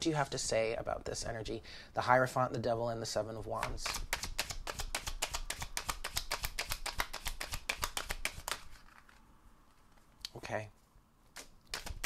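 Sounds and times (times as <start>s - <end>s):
cards being shuffled: 3.5s - 10.2s, 11.2s - 12.0s.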